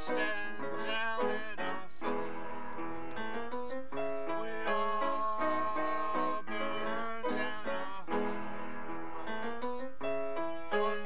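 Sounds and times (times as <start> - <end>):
upright piano chords: 0.0 - 11.0.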